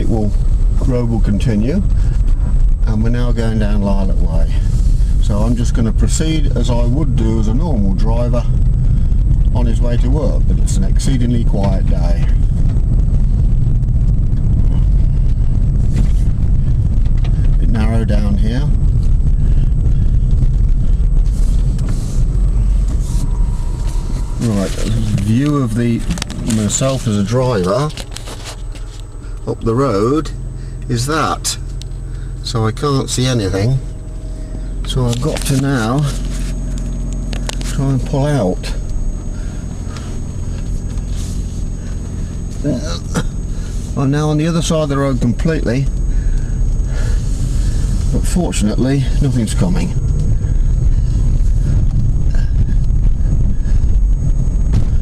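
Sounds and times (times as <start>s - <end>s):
car engine and tyre rumble inside cabin: 0.0s - 55.0s.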